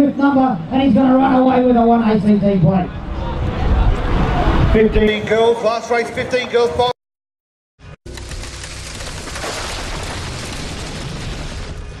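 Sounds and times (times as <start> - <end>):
dense rushing noise: 2.8 - 5.4.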